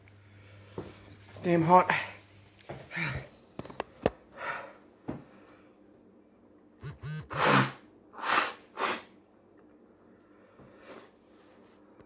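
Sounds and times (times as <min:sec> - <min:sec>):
short vocal sound: 0:06.8 - 0:09.0.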